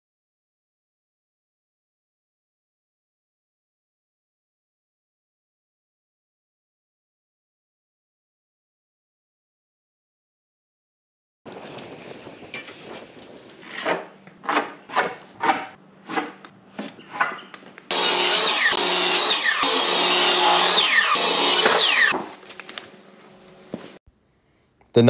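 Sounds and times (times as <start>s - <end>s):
power saw cutting wood: 17.9s - 22.2s.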